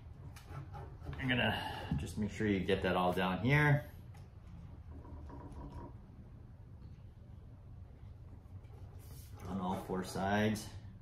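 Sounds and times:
roller ticking and rubbing on tape: 0.0 - 1.4.

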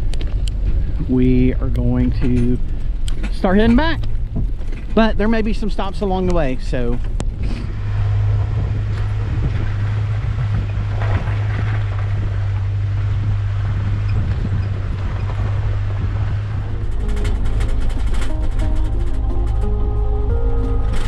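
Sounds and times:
vehicle engine and tyres droning: 0.0 - 21.0
music: 16.7 - 21.0.

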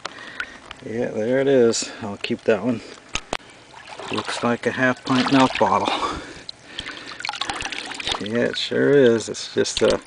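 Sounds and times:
water dripping: 0.0 - 10.0.

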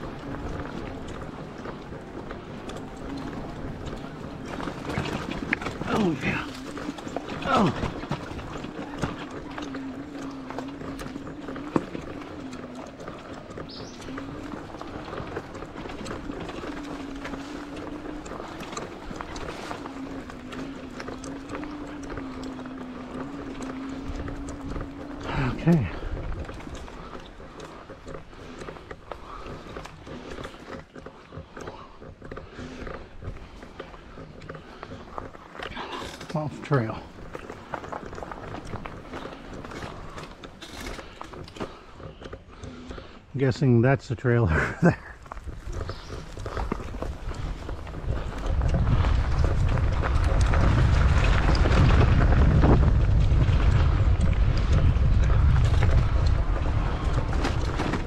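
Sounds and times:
bike rattling: 0.0 - 58.0.

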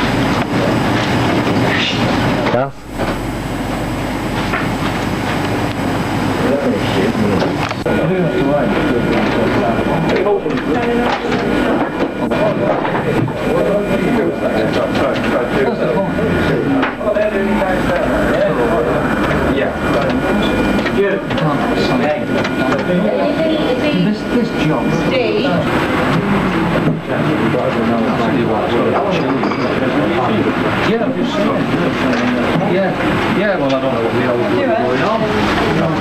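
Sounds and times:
indistinct background talking: 0.0 - 36.0
low electrical hum: 0.0 - 36.0.

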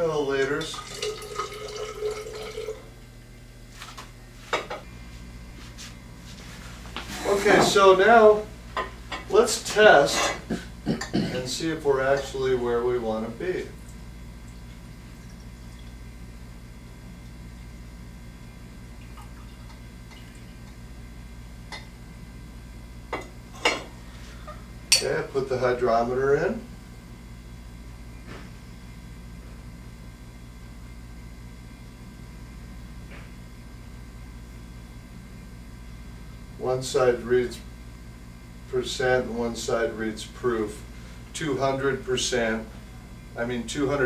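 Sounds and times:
water trickling into glass: 0.7 - 2.9.

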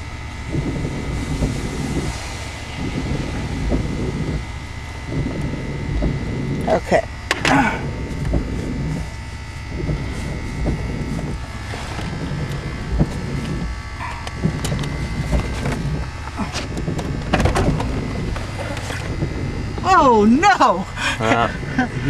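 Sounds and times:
car engine idling: 0.0 - 22.0
knocks and clicks: 2.8 - 19.9.

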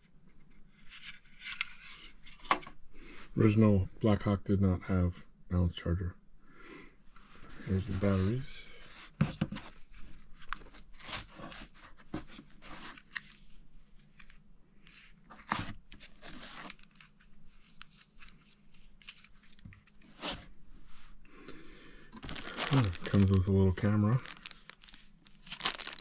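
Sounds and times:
rustles and clicks in foam case: 9.1 - 20.5.

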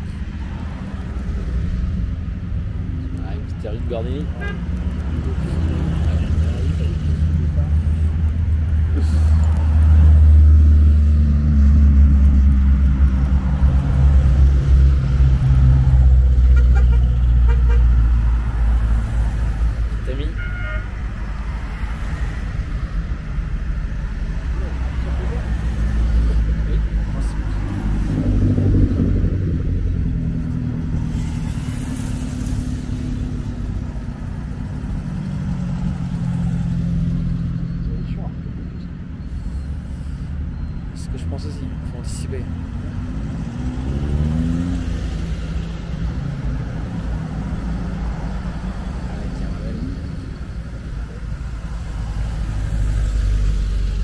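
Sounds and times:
older cars passing: 0.0 - 54.0
short car horn toot: 20.4 - 20.9.

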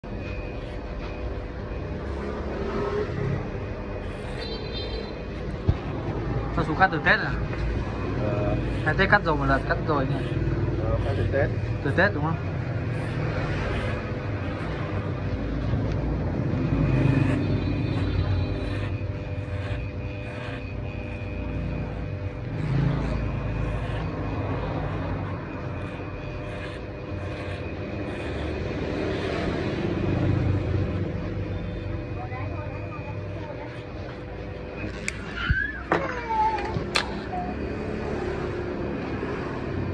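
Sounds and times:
electric hair clippers humming: 0.0 - 39.9.

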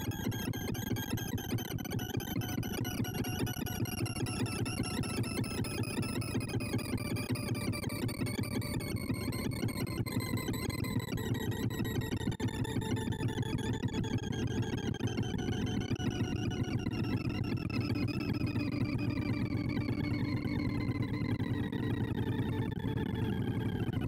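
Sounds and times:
rapid synthesized beeps: 0.0 - 23.9.

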